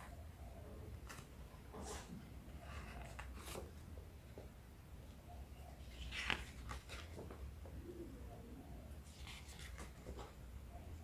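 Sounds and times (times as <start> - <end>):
book pages rustling: 2.7 - 3.8, 5.8 - 7.5, 9.0 - 10.5.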